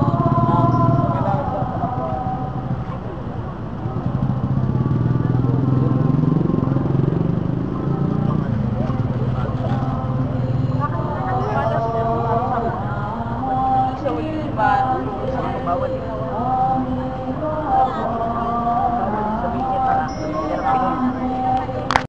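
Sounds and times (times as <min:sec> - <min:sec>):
crowd voices: 0:00.0 - 0:22.0
engine running: 0:00.0 - 0:22.0.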